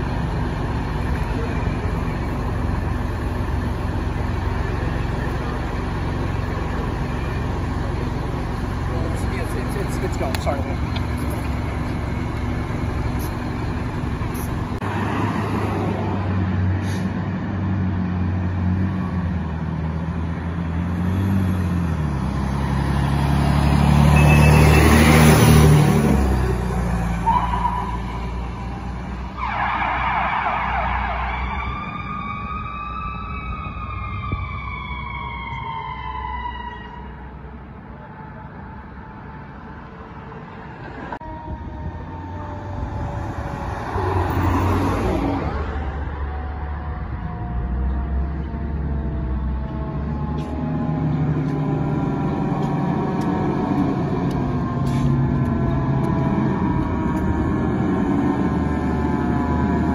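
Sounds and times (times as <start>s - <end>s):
truck engine passing: 0.0s - 59.9s
siren wailing: 22.4s - 37.4s, 40.9s - 59.9s.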